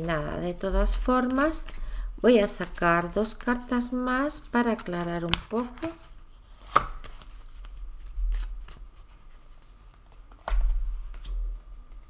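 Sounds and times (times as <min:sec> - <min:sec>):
cards being shuffled: 0:00.5 - 0:01.8, 0:02.4 - 0:12.0.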